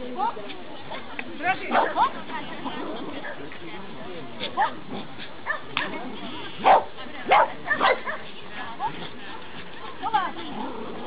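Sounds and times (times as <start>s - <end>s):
small dog barking: 5.4s - 5.9s, 6.6s - 8.2s.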